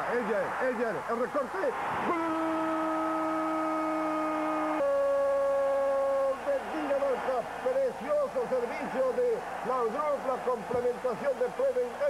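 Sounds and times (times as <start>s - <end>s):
fast excited commentary: 0.0s - 1.8s, 6.2s - 12.0s
commentator's long held goal cry: 2.1s - 7.3s.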